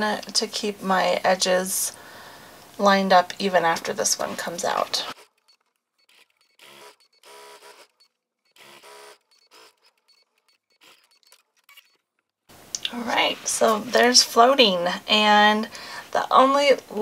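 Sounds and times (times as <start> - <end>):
sewing machine stitching: 4.7 - 12.0.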